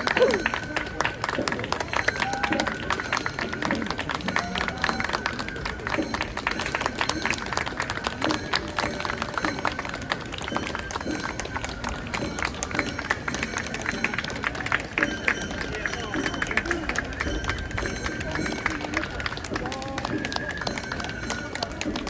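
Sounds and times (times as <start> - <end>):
crowd chattering: 0.0 - 22.0.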